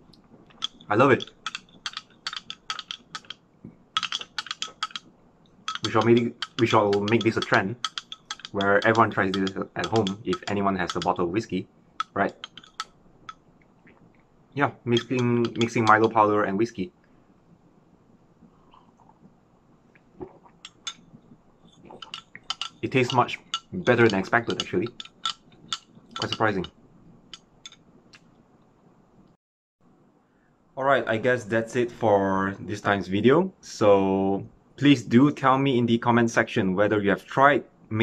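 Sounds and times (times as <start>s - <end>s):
teaspoon clinking glass and ice: 21.7s - 26.6s.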